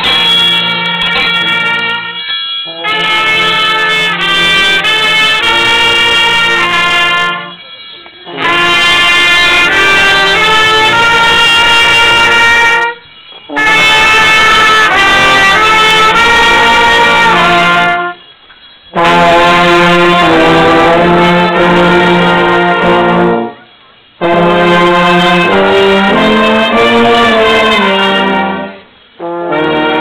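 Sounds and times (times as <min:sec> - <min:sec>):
brass band playing slow tune: 0:00.0 - 0:30.0.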